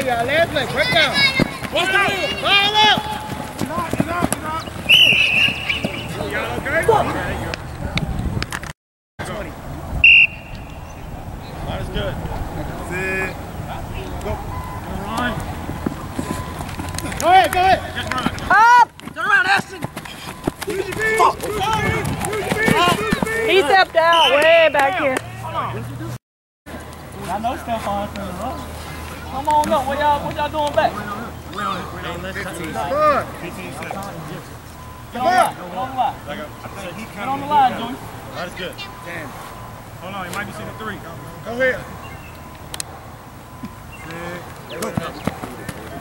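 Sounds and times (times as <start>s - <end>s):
men shouting outdoors: 0.0s - 7.6s, 17.0s - 26.2s, 27.2s - 42.5s.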